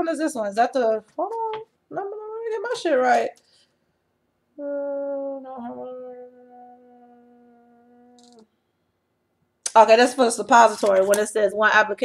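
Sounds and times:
woman humming: 4.6 - 8.5.

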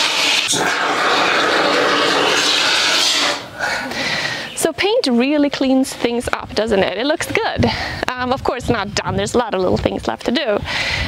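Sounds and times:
aerosol spray foam hissing: 0.0 - 3.5.

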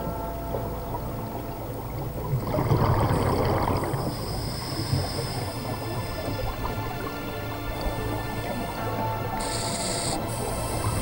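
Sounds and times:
low underwater rumble: 0.0 - 11.0
regulator exhalation bubbles: 2.4 - 6.8.

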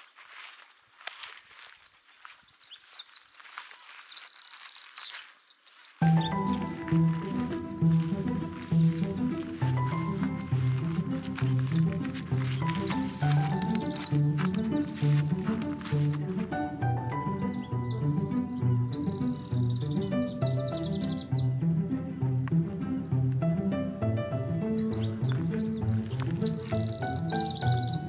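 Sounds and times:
faint outdoor ambience: 0.0 - 28.0
songbird singing: 0.0 - 28.0
background music with bass line: 6.0 - 28.0.

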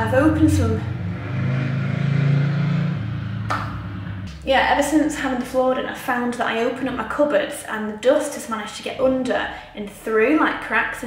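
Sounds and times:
vehicle engine running: 0.0 - 5.6.

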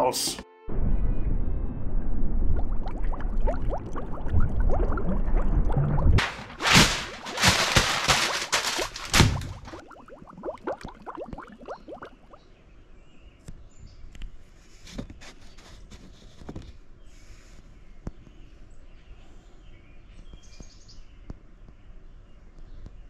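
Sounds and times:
lake water sloshing and splashing: 2.6 - 12.4.

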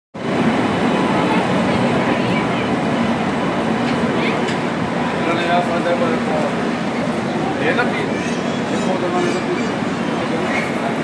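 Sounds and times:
crowd chatter: 0.2 - 11.0
train coaches rolling on track: 0.2 - 11.0.

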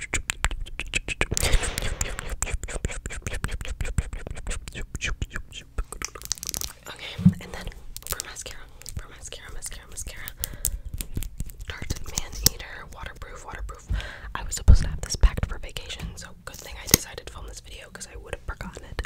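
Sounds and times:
soft whispering: 1.4 - 6.0, 6.7 - 10.7, 11.7 - 19.0
mascara tube clicks and taps: 10.2 - 12.6.

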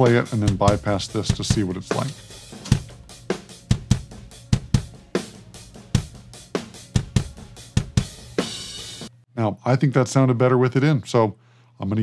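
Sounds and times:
kick and snare drum hits: 0.4 - 3.1.

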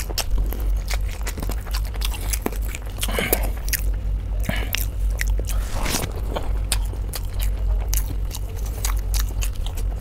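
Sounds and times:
man chewing food: 0.0 - 10.0
steady low hum: 0.0 - 10.0.

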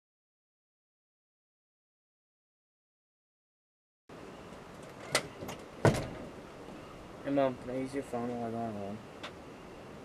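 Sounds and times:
outdoor background hiss: 4.1 - 10.0
sharp knocks: 5.4 - 6.3.

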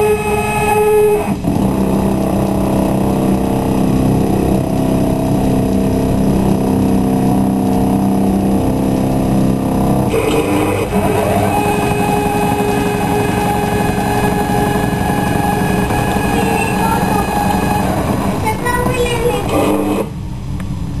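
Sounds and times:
stepper motors whining: 0.0 - 20.2
low steady hum: 0.0 - 21.0.

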